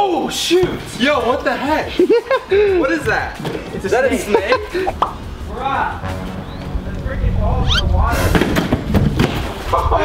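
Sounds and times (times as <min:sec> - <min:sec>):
young men yelping and laughing: 0:01.6 - 0:05.3.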